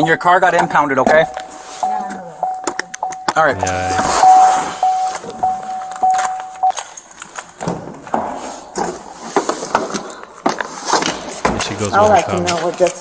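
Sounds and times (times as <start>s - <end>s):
vehicle warning chime: 0.0s - 7.0s
car doors: 0.5s - 9.2s.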